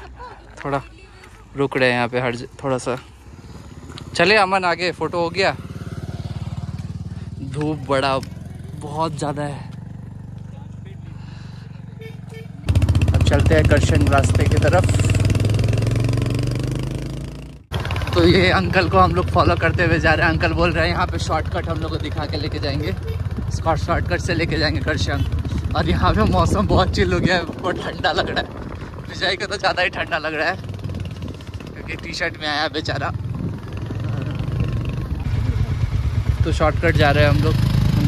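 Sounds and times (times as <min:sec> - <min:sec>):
wind and road noise: 0:00.0 - 0:38.0
motorcycle engine running: 0:02.6 - 0:38.0.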